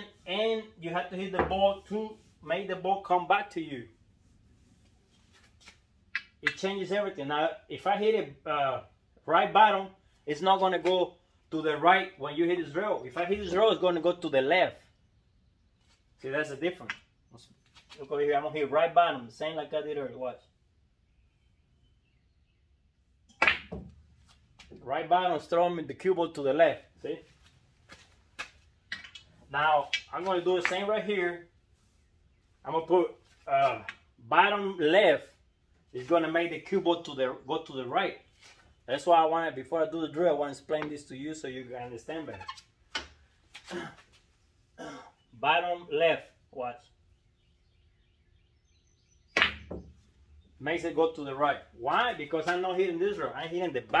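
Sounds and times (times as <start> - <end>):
cue striking ball crack: 23.4 - 23.8, 49.4 - 49.8
ball knocking ball: 49.4 - 49.9.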